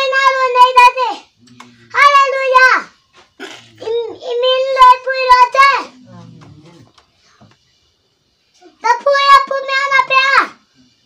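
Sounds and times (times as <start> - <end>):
boy chanting prayer: 0.0 - 7.0, 8.6 - 11.0.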